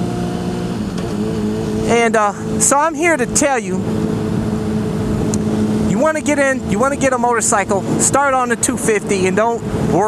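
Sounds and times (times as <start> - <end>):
motorcycle engine cruising: 0.0 - 10.0
road and wind rumble: 0.0 - 10.0.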